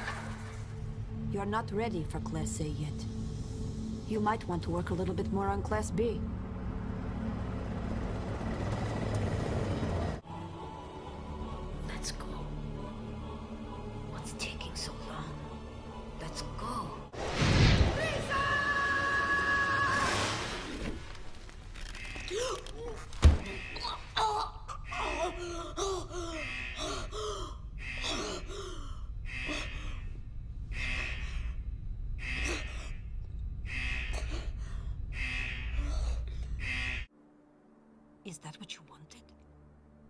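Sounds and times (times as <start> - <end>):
quiet sustained music tones: 0.0 - 20.4, 21.0 - 40.0.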